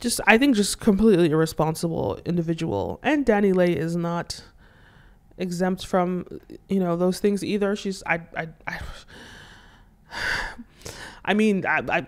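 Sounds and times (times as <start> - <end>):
woman breathing: 4.5 - 5.3, 8.9 - 11.3.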